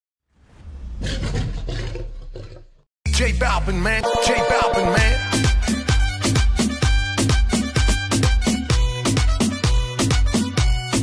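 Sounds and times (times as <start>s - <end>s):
lion roaring: 0.8s - 2.8s.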